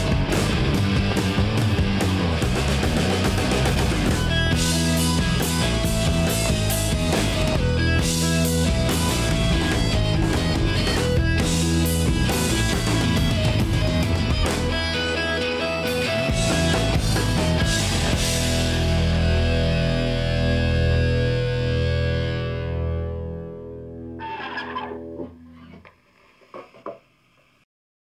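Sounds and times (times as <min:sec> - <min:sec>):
rock band playing live: 0:00.0 - 0:25.3
distorted electric guitars: 0:00.0 - 0:27.6.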